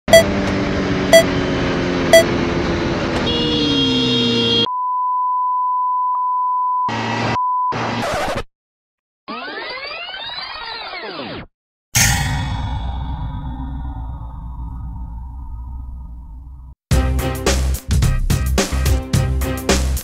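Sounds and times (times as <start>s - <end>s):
countdown beeps: 0.1s - 0.3s, 1.1s - 1.3s, 2.1s - 2.3s
motorcycle engine revving: 0.1s - 4.6s
censor bleep: 4.7s - 7.8s.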